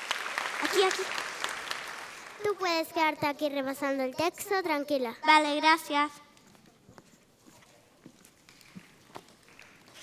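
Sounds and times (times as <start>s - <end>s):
faint footsteps on wooden floor: 6.3s - 10.0s.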